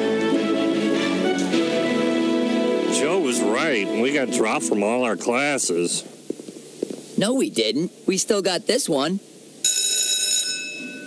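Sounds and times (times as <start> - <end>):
bell chime: 9.7 - 11.0.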